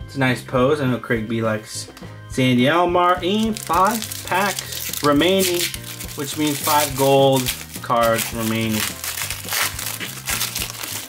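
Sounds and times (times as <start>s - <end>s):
background music: 0.0s - 11.0s
foil wrapper crinkling: 3.4s - 11.0s.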